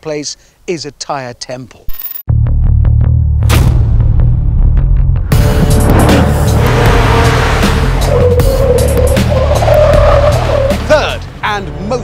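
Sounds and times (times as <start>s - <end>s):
music: 2.3s - 12.0s
car engine: 5.3s - 11.5s
tyres squealing: 6.3s - 11.3s.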